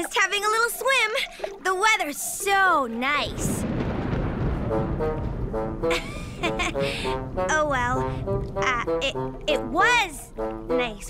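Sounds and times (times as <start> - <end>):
low rumble: 3.2 - 10.5.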